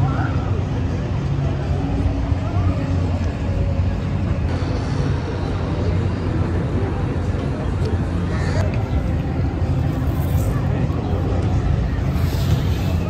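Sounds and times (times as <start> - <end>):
faint distant voices: 0.0 - 13.0
steady low rumble: 0.0 - 13.0.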